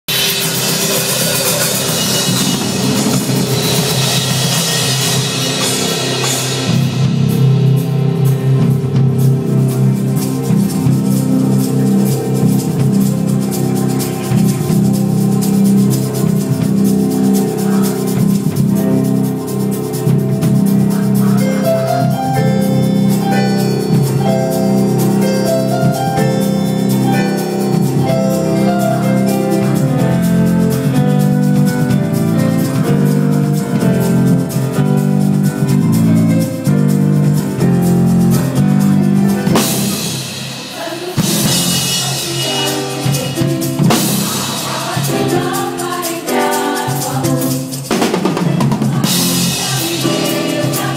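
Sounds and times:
drum kits: 0:00.0 - 0:50.9
gospel band held chords: 0:00.0 - 0:50.9
light high percussion: 0:00.1 - 0:50.9.

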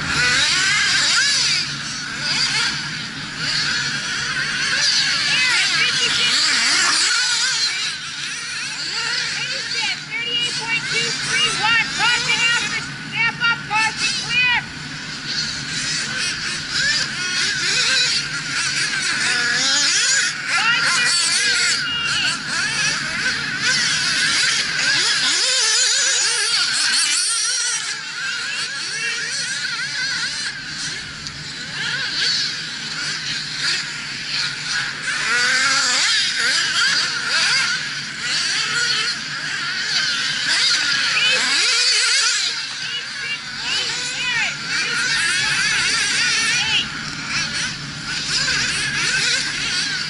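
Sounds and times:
rc car engines whining: 0:00.0 - 0:50.0.

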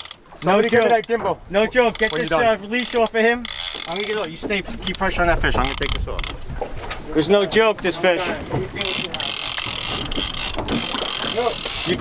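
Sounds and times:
fishing reel drag buzzing: 0:00.0 - 0:00.9, 0:01.9 - 0:04.3, 0:08.9 - 0:12.0.

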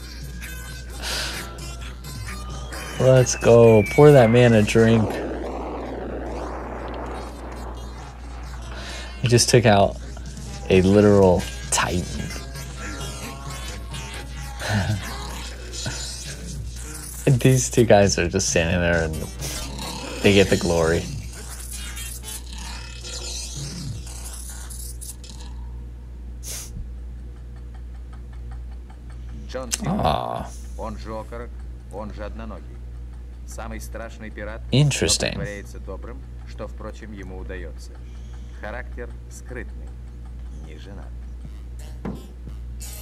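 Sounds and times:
animated film music: 0:00.0 - 0:26.1
cartoon rushing noise: 0:01.3 - 0:13.9.

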